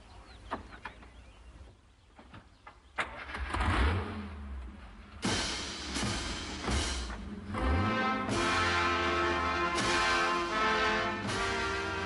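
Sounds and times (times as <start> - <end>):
car engine revving: 3.2 - 12.0.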